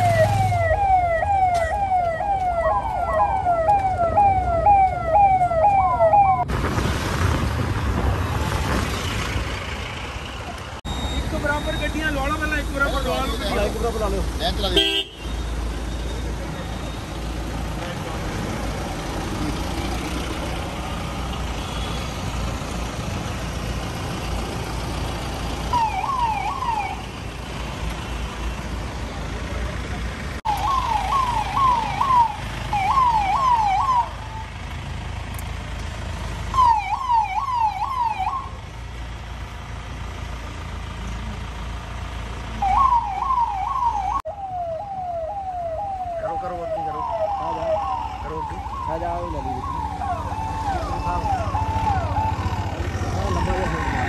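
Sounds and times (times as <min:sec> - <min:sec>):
traffic and engine noise: 0:00.0 - 0:54.0.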